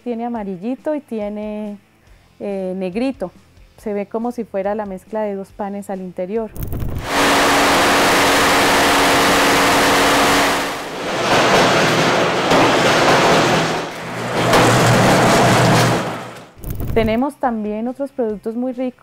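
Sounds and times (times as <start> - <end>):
oven burner roaring: 6.8 - 17.2.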